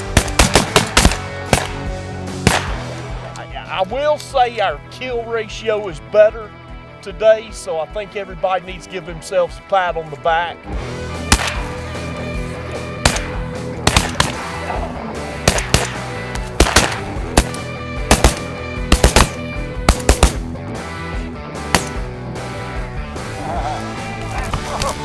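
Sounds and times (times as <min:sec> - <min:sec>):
shotgun blasts: 0:00.0 - 0:03.1, 0:11.2 - 0:11.9, 0:12.9 - 0:14.7, 0:15.4 - 0:20.4, 0:21.6 - 0:22.1
background music: 0:00.0 - 0:25.0.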